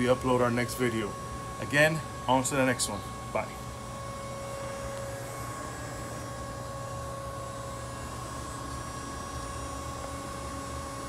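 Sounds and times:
pool pump humming and whining: 0.0s - 11.0s.

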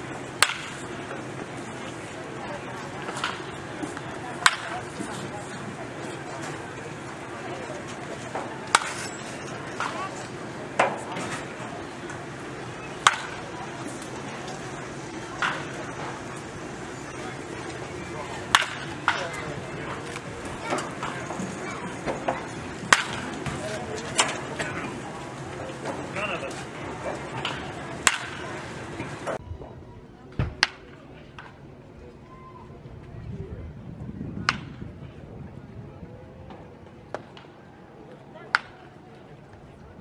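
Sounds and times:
background chatter: 0.0s - 40.0s
baseball bat cracking balls: 0.3s - 0.9s, 8.2s - 9.1s, 13.0s - 14.6s, 15.4s - 16.3s, 17.3s - 24.9s, 27.3s - 28.6s.

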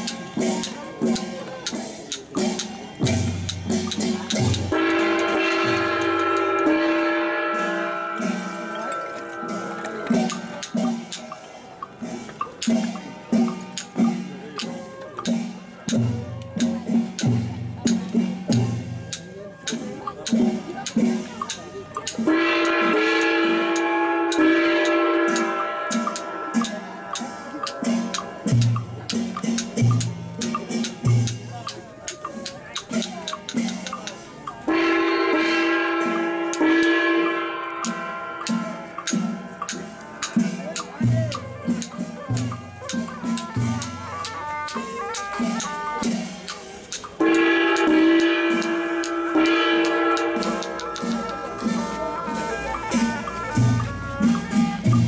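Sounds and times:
funeral music with percussion: 0.0s - 55.0s
sharp knocks and drum beats: 0.0s - 55.0s
long held note: 4.7s - 10.5s, 47.2s - 54.9s
horn holding long notes: 4.7s - 11.4s, 22.2s - 29.8s, 34.6s - 55.0s.

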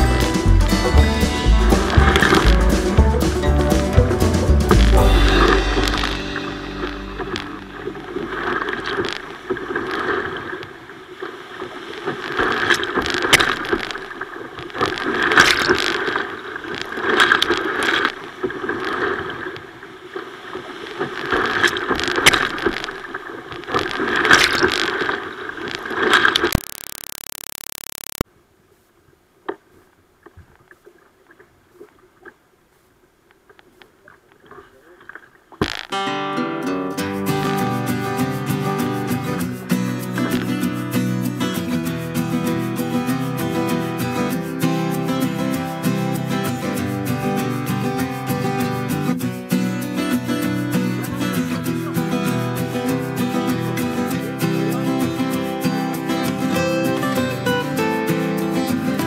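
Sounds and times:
whitewater rushing: 0.1s - 18.1s
waves splashing against a kayak: 6.9s - 26.6s.

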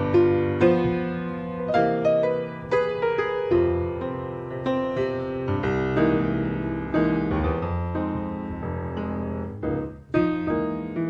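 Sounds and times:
piano chords ringing: 0.0s - 11.0s.

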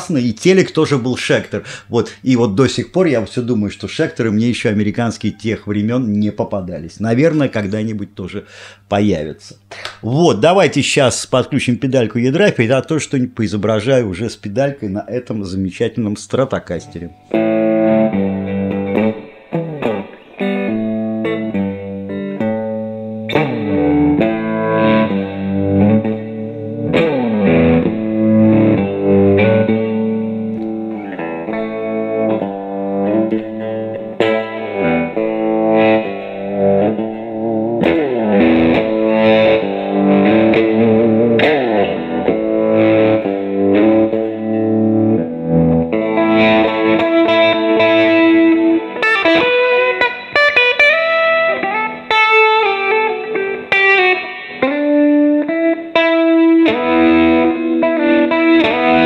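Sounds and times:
electric guitar chords and riffs: 16.8s - 59.0s.

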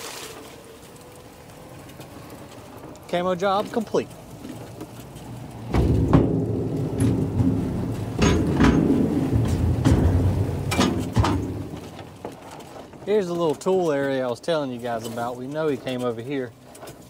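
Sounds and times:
golf cart rolling on steel deck: 0.0s - 17.0s
knocks and rattles: 4.4s - 13.8s.

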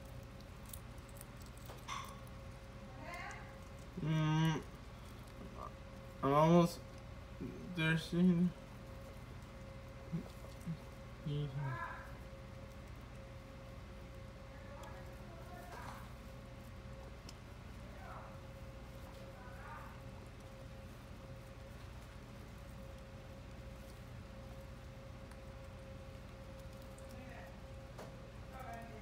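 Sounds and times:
faint steady hum: 0.0s - 29.0s
guinea pigs rustling in shavings: 0.0s - 29.0s.

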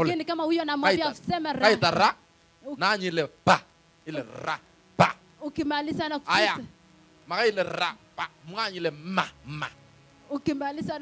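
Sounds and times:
man speaking through loudspeaker: 7.3s - 9.8s.

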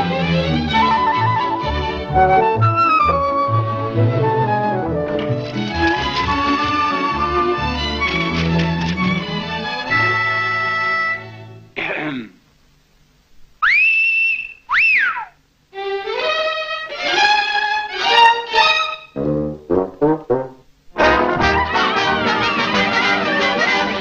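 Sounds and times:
cartoon orchestral music: 0.0s - 11.4s, 15.8s - 24.0s
slide whistle: 9.9s - 11.2s, 13.6s - 15.4s
wolf whistle: 13.6s - 15.4s
brass phrase: 19.2s - 24.0s.

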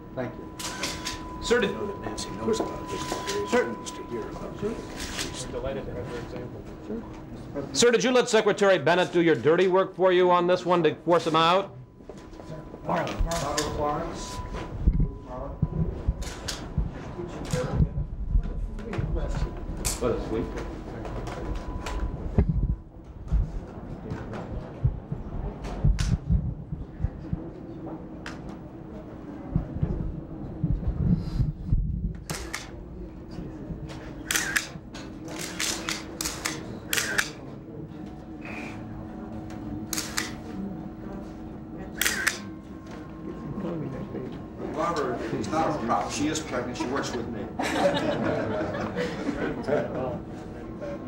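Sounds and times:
indistinct low voices: 0.0s - 7.8s, 10.1s - 51.0s
low room hum: 0.0s - 51.0s
camera shutter clicks: 32.3s - 32.7s, 34.3s - 34.7s, 35.3s - 37.4s, 39.9s - 40.4s, 42.0s - 42.5s.

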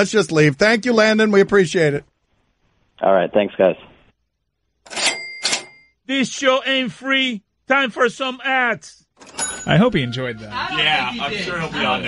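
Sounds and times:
cash register ka-ching: 4.9s - 5.9s, 9.2s - 9.9s
bell ringing: 9.2s - 11.0s.

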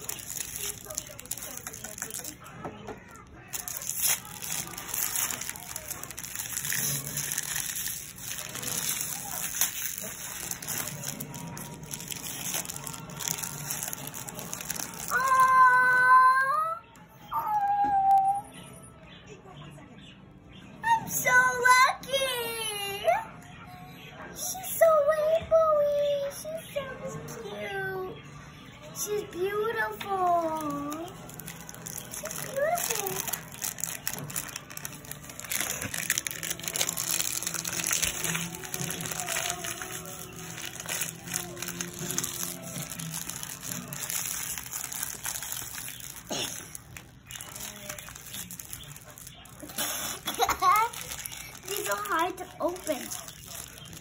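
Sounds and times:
plastic wrapper crinkling: 0.0s - 16.0s, 29.1s - 54.0s
music: 0.0s - 54.0s.

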